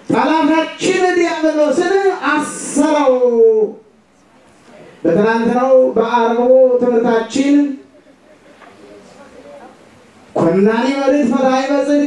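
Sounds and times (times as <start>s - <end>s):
man preaching: 0.0s - 3.9s, 5.0s - 7.9s, 10.4s - 12.0s.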